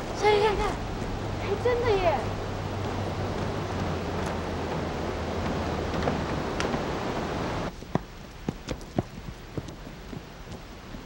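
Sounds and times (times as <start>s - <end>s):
outdoor rushing noise: 0.0s - 11.0s
footsteps on gravel: 2.8s - 7.0s.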